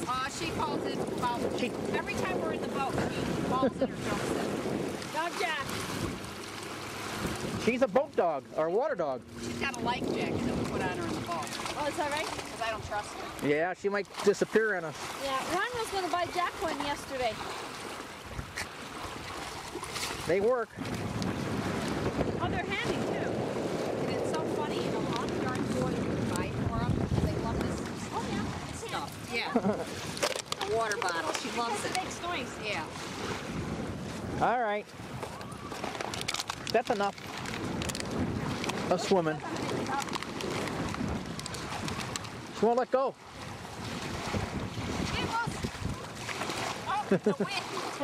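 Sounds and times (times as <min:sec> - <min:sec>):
lake water washing: 0:00.0 - 0:48.0
wind buffeting microphone: 0:00.0 - 0:48.0.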